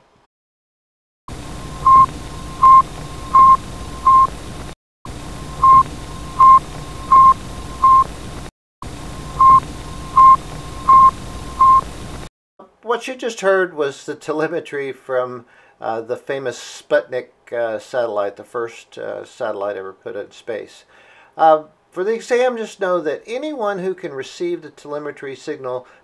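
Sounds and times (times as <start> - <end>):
static hiss: 1.3 - 12.3
short high beeps: 1.8 - 4.3, 5.6 - 8.1, 9.4 - 11.8.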